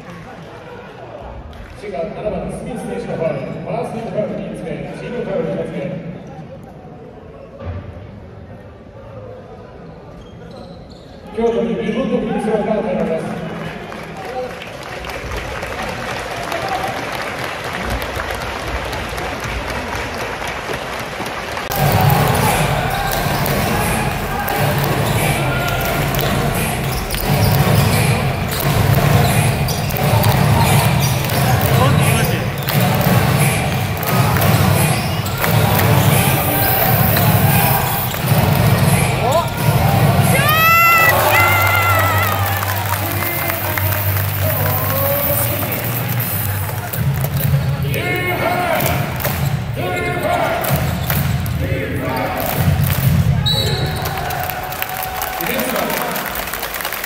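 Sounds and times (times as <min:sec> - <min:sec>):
crowd noise and voices: 0:00.0 - 0:57.0
rhythmic crowd cheer: 0:13.6 - 0:57.0.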